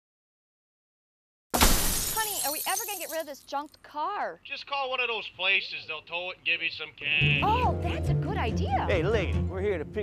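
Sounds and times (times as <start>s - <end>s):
glass shattering crash: 1.6s - 3.3s.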